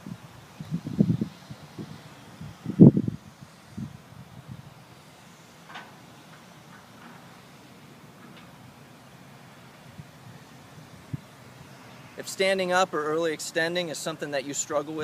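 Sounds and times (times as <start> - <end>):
wind buffeting microphone: 0.0 - 4.8, 9.9 - 11.8.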